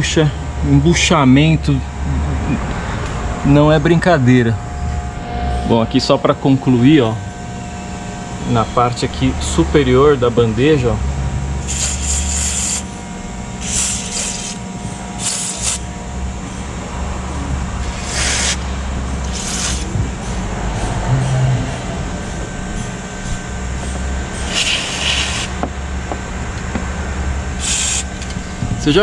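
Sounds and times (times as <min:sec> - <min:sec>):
steady low hum: 0:00.0 - 0:29.0
aerosol can spraying: 0:11.6 - 0:12.8, 0:13.6 - 0:14.6, 0:15.2 - 0:15.8, 0:17.8 - 0:18.6, 0:19.3 - 0:19.9, 0:24.5 - 0:25.5, 0:27.6 - 0:28.1.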